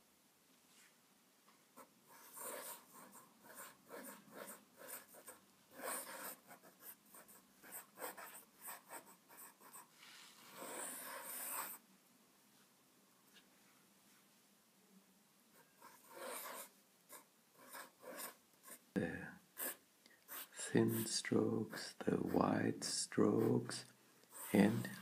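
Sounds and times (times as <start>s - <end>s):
pen nib scratching paper: 2.1s - 9.9s, 10.5s - 11.8s, 15.8s - 18.8s, 19.6s - 22.5s, 23.2s - 25.0s.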